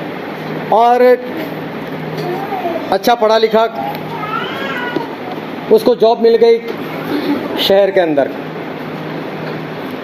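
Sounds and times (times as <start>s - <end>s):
short high-pitched cry: 3.8s - 5.2s.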